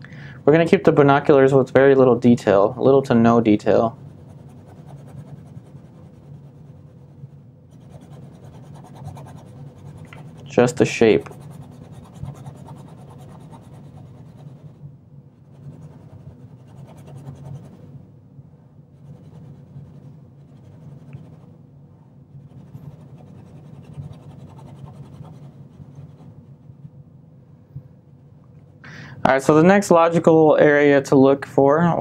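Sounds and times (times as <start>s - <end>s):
low steady hum: 0.0s - 32.0s
paintbrush scratching canvas: 4.0s - 14.8s, 15.4s - 17.9s, 19.0s - 21.5s, 22.4s - 26.9s.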